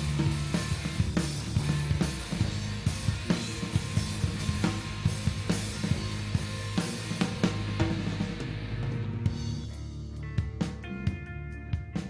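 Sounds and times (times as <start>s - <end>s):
sustained low bass line: 0.0s - 11.8s
drum kit beat: 0.0s - 12.0s
electric guitars: 0.0s - 12.0s.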